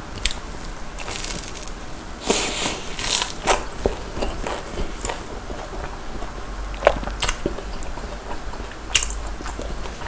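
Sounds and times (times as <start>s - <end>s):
crunchy bites into fried batter: 1.0s - 5.2s
chewing with wet clicks: 3.3s - 10.0s.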